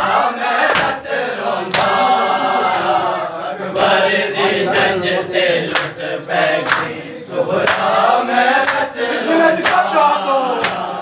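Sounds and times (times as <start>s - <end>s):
men chanting in unison: 0.0s - 11.0s
hands slapping chests: 0.6s - 1.0s, 1.7s - 2.0s, 6.6s - 7.0s, 7.6s - 8.0s, 9.6s - 9.9s, 10.6s - 10.9s.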